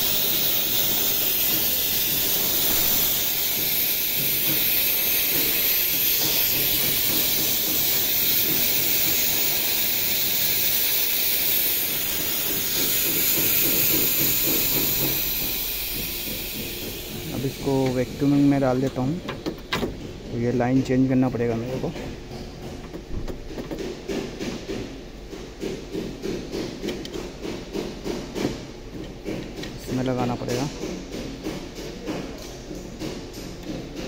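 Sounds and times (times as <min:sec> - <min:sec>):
gas hissing from hoses: 0:00.0 - 0:22.1, 0:23.8 - 0:34.0.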